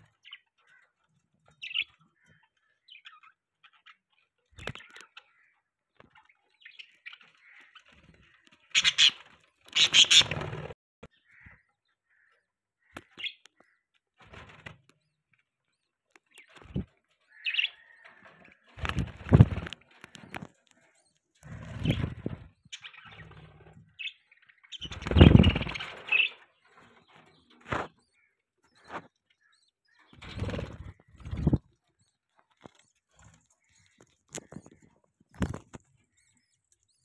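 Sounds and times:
budgies flapping wings: 4.6 - 5.0, 7.0 - 10.8, 16.3 - 16.9, 18.1 - 20.8, 21.4 - 24.1, 24.7 - 26.3, 26.9 - 28.0, 30.0 - 31.8, 32.6 - 36.3
high bird chirps: 6.6 - 10.4.

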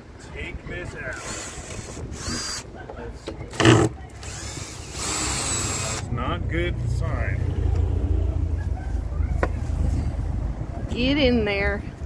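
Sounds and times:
wind buffeting microphone: 0.0 - 2.9.

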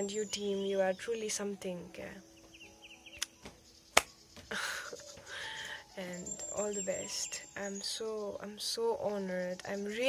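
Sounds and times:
faint bird chirps: 0.0 - 10.0
sharp click: 3.2 - 3.4, 4.0 - 4.2.

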